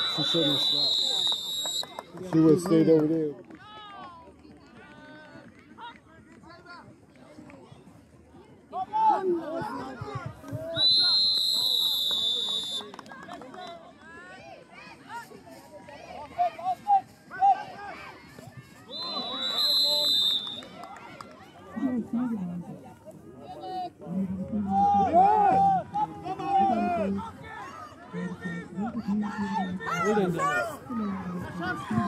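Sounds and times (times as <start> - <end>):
referee's whistle blasts: 0.0 - 2.0, 10.8 - 12.9, 18.9 - 20.8
players and spectators shouting: 18.9 - 20.9, 24.6 - 32.0.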